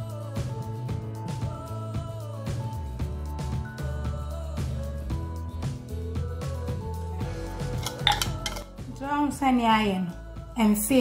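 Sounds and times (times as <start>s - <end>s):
background music with beat: 0.0s - 9.1s
metal spoon clinking on bowls: 7.8s - 8.7s.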